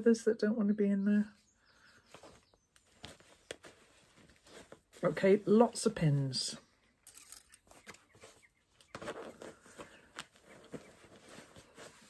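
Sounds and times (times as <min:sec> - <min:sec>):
fabric rustling: 0:01.8 - 0:06.0, 0:07.1 - 0:12.0.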